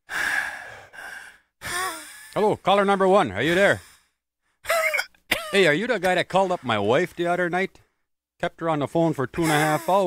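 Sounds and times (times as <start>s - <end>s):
heavy breathing on phone line: 0.1s - 2.4s.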